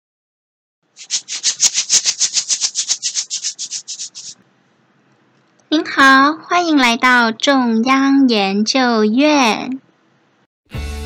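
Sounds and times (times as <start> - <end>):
rhythmic maraca-like shaking: 1.0 - 4.4.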